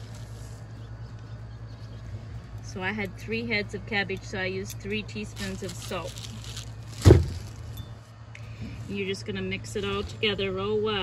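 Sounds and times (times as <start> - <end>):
steady low hum: 0.0 - 11.0
loud thump: 7.0 - 7.5.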